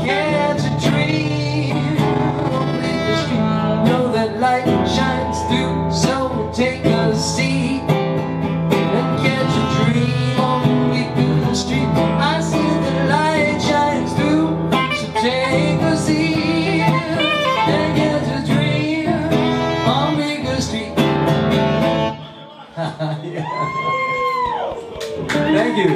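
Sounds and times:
saxophone melody: 0:00.0 - 0:04.0, 0:08.8 - 0:11.2, 0:13.4 - 0:22.4
strummed acoustic guitar: 0:00.0 - 0:22.5.

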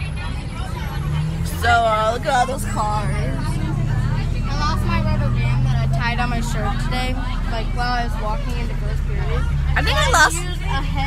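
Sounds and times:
bus engine droning: 0:00.0 - 0:11.0
passengers chattering: 0:00.0 - 0:11.0.

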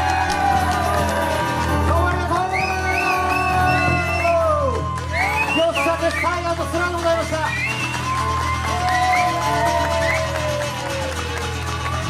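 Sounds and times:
acoustic guitars: 0:00.0 - 0:12.0.

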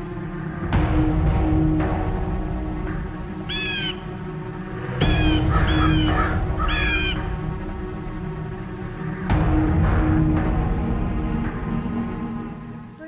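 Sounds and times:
low background music: 0:00.0 - 0:13.0
crow cawing: 0:03.5 - 0:04.2, 0:05.1 - 0:07.4.

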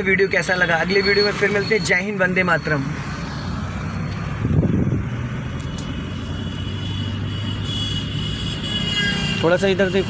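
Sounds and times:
car engine hum: 0:00.0 - 0:10.0
road rumble: 0:00.0 - 0:10.0.

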